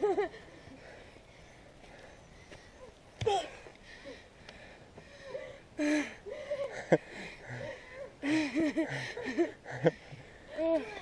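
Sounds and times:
hard breathing: 0:00.3 - 0:11.0.

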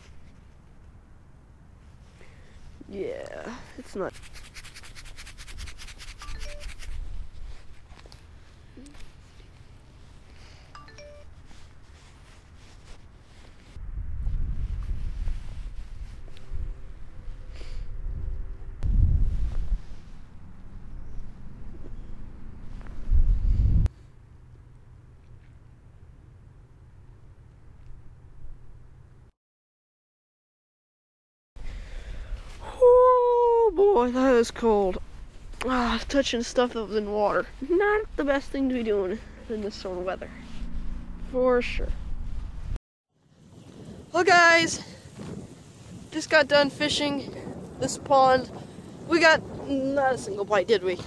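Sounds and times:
handling noise scratching: 0:03.9 - 0:08.2
wind buffeting microphone: 0:13.3 - 0:23.9, 0:32.0 - 0:51.0
low rumbling surges: 0:34.5 - 0:42.8.

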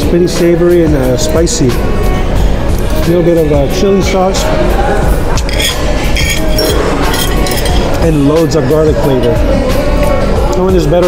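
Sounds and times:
background music: 0:00.0 - 0:11.0
spoon and fork clinking on plate: 0:05.4 - 0:08.0.

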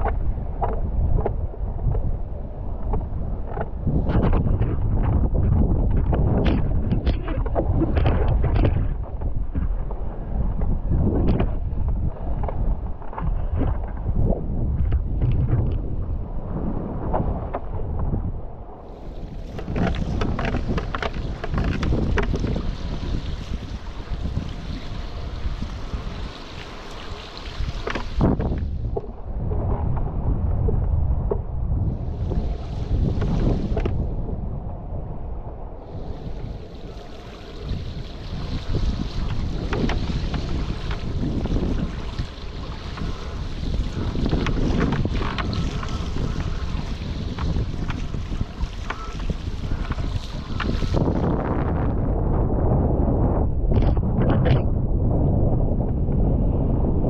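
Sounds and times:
choppy water splashing: 0:00.0 - 0:57.0
wind buffeting microphone: 0:00.0 - 0:57.0
water rushing and spraying: 0:18.8 - 0:28.6, 0:35.9 - 0:51.4.

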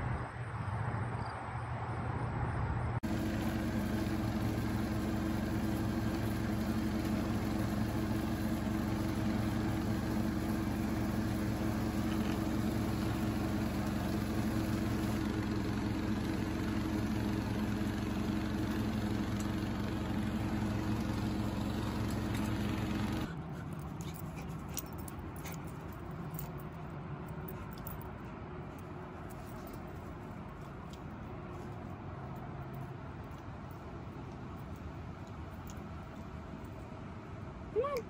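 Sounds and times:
riding lawn mower engine running: 0:03.0 - 0:37.6.

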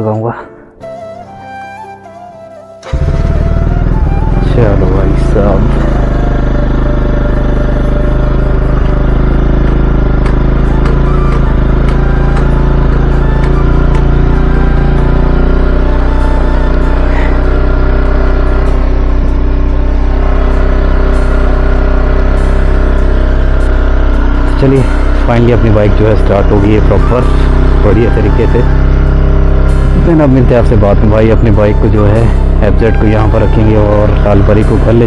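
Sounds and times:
background music: 0:00.0 - 0:35.0
motorcycle engine running on choke: 0:02.8 - 0:35.0.

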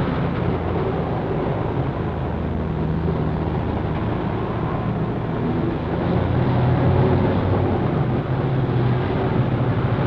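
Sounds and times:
motor vehicles rumbling: 0:00.0 - 0:10.0.

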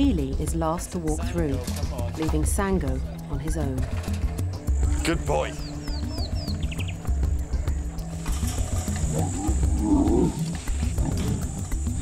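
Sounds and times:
documentary music with pulsing bass: 0:00.0 - 0:12.0
lion calling: 0:08.3 - 0:12.0.

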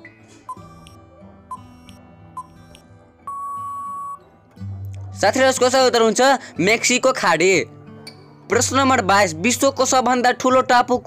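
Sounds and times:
soft background music: 0:00.0 - 0:11.0
short beeps: 0:03.3 - 0:04.2.

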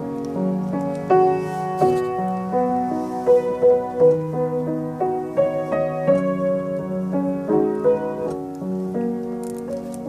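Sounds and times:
old piano playing lullaby melody: 0:00.0 - 0:10.0.

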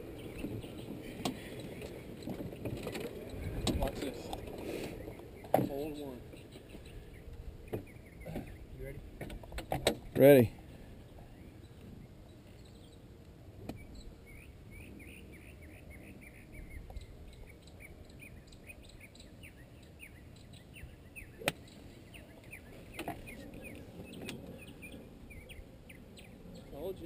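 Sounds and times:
faint bird chirping: 0:00.0 - 0:09.0, 0:10.2 - 0:27.0
golf club striking ball: 0:21.4 - 0:21.6.

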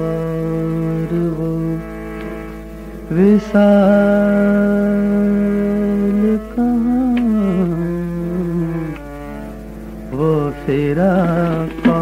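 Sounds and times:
man singing a long note: 0:00.0 - 0:01.9, 0:03.1 - 0:09.0, 0:10.1 - 0:12.0
soft sustained accompaniment: 0:00.0 - 0:12.0.

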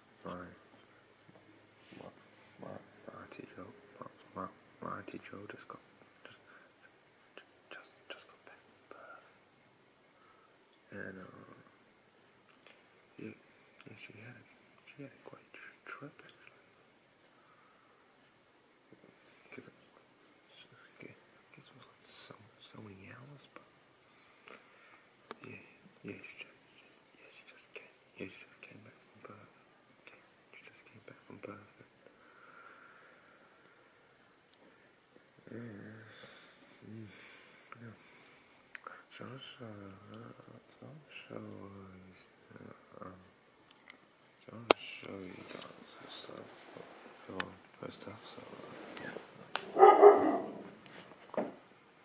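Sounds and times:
faint room hiss: 0:00.0 - 0:52.0
dog barking loudly: 0:49.6 - 0:50.7.

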